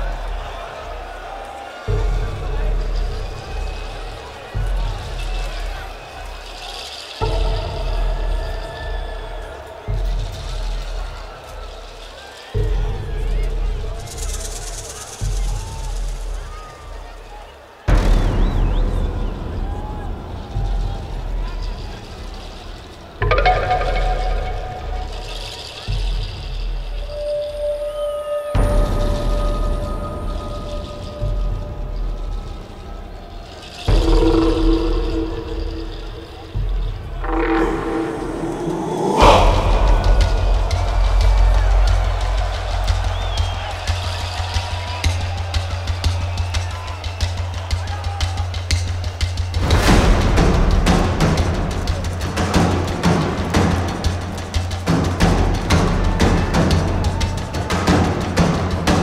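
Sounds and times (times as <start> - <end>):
held higher tone: 23.2 - 25.6, 37.2 - 40.9
deep rumbling low swells: 34.0 - 43.2
horn-like blast over heavy bass: 37.2 - 42.8.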